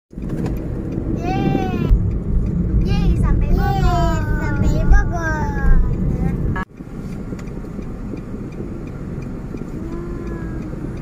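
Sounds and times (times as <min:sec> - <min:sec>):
car road and engine rumble: 0:00.1 - 0:11.0.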